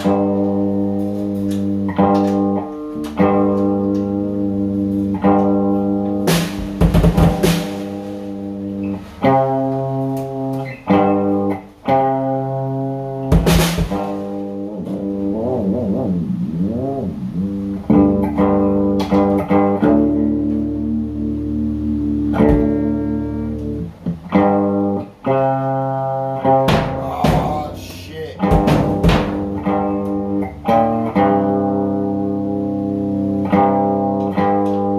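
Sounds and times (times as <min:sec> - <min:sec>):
electric guitar chords: 0:00.0 - 0:34.9.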